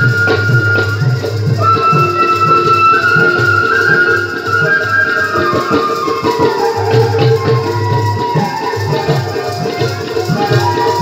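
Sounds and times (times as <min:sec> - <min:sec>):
flute holding long notes: 0:00.0 - 0:11.0
hand drum beat: 0:00.0 - 0:11.0.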